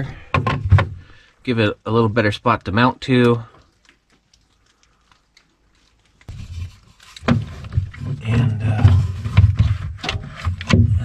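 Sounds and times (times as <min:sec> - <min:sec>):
wooden board scraping against carpet: 0:06.3 - 0:11.0.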